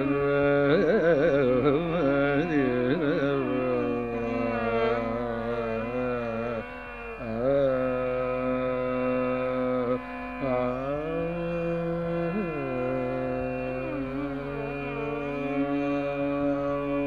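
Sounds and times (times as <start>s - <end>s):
man singing: 0.0s - 17.0s.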